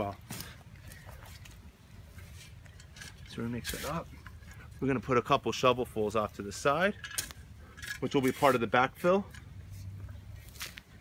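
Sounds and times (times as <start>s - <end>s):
shovel scraping through soil: 2.1s - 4.4s, 7.2s - 9.0s, 9.6s - 11.0s.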